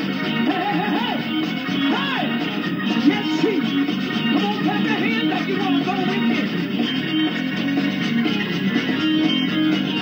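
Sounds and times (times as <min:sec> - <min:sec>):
gospel band music with guitar: 0:00.0 - 0:10.0.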